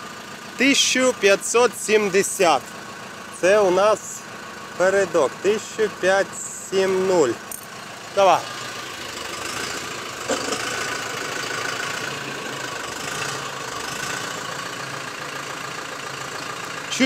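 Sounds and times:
tractor diesel engine running: 0:00.0 - 0:17.0.

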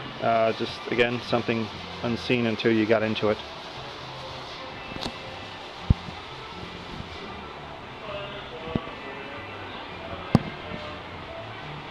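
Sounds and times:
steady background noise: 0:00.0 - 0:11.9.

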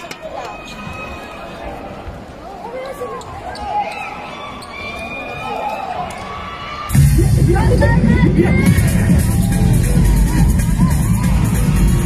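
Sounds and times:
crowd voices in hall: 0:00.0 - 0:12.0.

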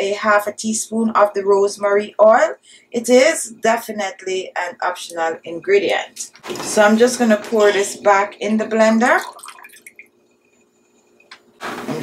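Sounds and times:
liquid pouring into plastic cup: 0:09.0 - 0:10.2.

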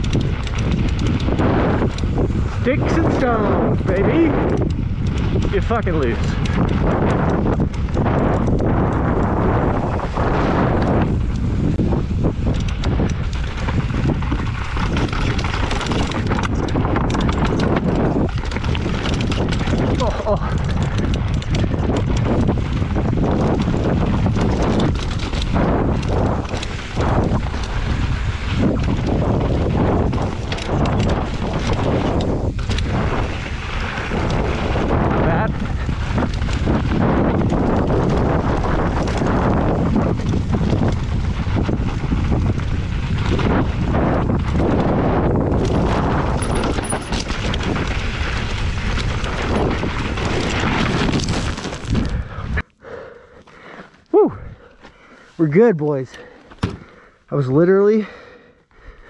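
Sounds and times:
bike clattering and knocking: 0:00.0 - 0:03.4, 0:04.4 - 0:52.1, 0:56.5 - 0:56.9
wind buffeting microphone: 0:00.0 - 0:59.0
tyres crunching over stones: 0:45.5 - 0:52.2.

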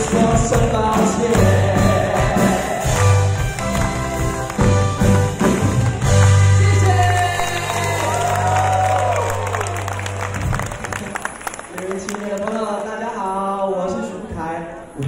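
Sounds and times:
live band playing: 0:00.0 - 0:11.4
audience clapping and cheering: 0:00.0 - 0:12.9.

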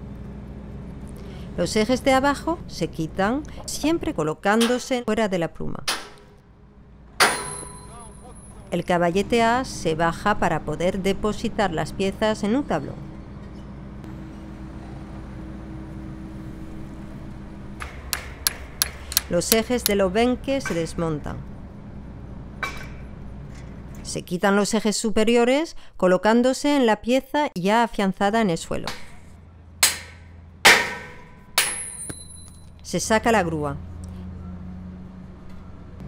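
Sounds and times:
hammer striking steel pins: 0:18.1 - 0:20.0
sharp metallic clinks of pliers: 0:18.5 - 0:20.0.

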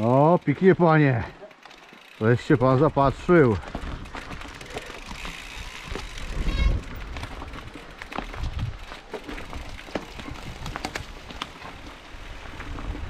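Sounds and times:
bike rattling and clicking: 0:00.0 - 0:13.0
bike tyres rolling on gravel: 0:00.0 - 0:13.0.

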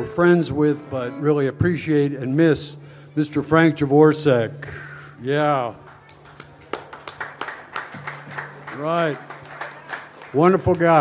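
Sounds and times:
scattered clapping: 0:05.8 - 0:11.0.

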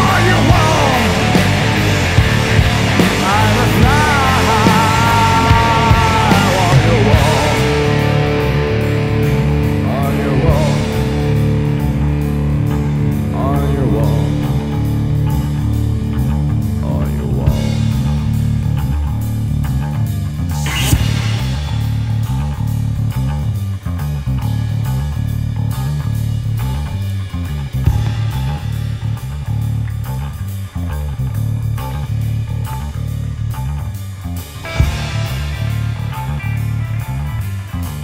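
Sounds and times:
drums: 0:00.0 - 0:38.0
electric guitar chords: 0:00.0 - 0:38.0
stoner rock instrumental: 0:00.0 - 0:38.0.

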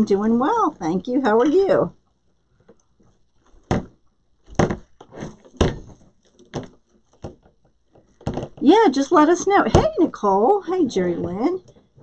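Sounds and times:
knocks and thumps on table: 0:03.6 - 0:08.6.

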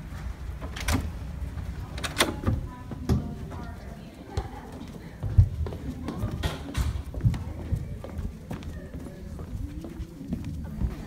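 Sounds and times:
faint voices murmuring: 0:01.4 - 0:11.0
footsteps on hard stage floor: 0:02.8 - 0:11.0.

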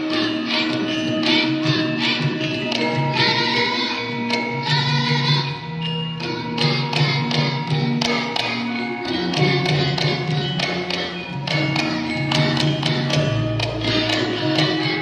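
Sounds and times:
gamelan ensemble playing: 0:00.0 - 0:15.0.

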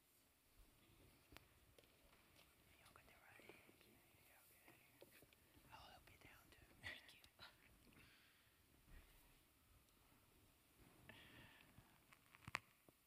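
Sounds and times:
faint whispering: 0:02.4 - 0:08.1.

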